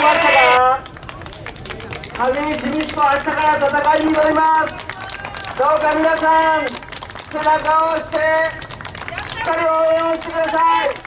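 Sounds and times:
man shouting through microphone: 0.0 - 0.8
crowd clapping: 0.0 - 11.0.

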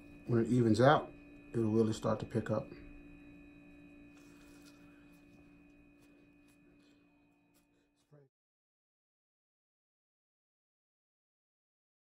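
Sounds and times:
faint two-tone hum: 0.0 - 8.3.

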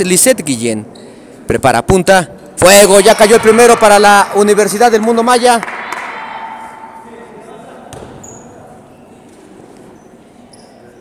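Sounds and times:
echoing gym room noise: 0.0 - 11.0
basketball bounce: 7.9 - 8.2.

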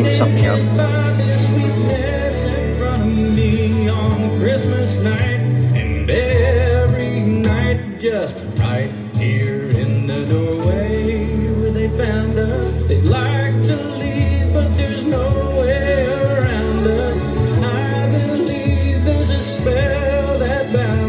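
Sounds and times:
song with singer and band: 0.0 - 21.0.

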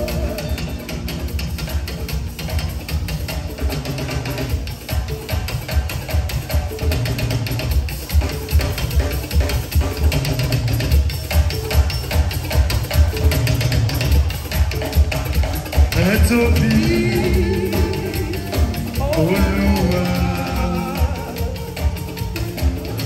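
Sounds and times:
live party band music: 0.0 - 23.0.

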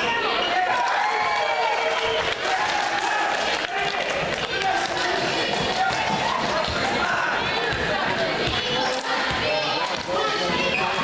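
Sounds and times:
voices calling and talking: 0.0 - 11.0.

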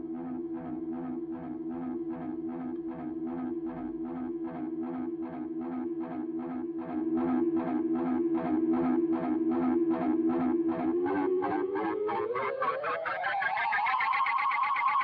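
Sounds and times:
electric guitar with tape delay: 0.0 - 15.0.

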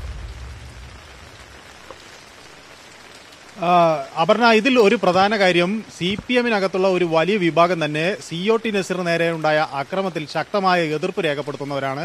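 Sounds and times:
deep rumbling whoosh: 0.0 - 1.8
steady hiss: 0.0 - 12.0.

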